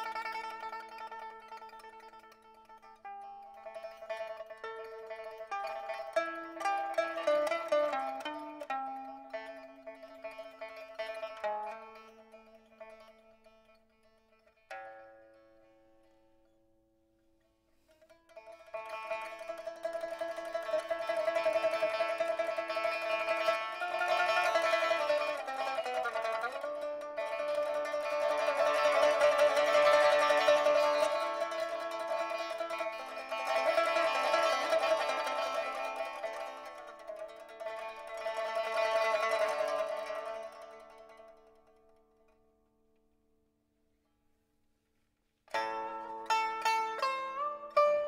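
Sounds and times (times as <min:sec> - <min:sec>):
plucked lute melody: 0:00.0 - 0:16.5, 0:17.8 - 0:42.8, 0:45.5 - 0:48.0.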